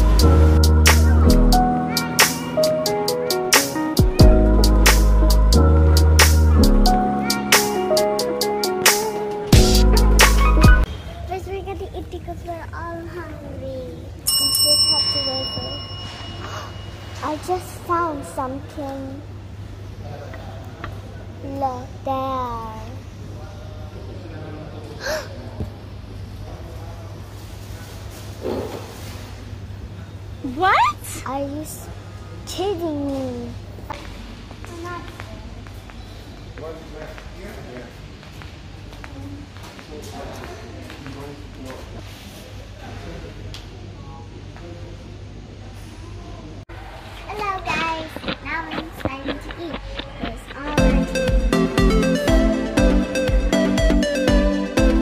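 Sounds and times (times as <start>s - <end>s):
bell ringing: 14.3s - 17.2s
steady low hum: 43.1s - 55.0s
indistinct background voices: 46.7s - 52.2s.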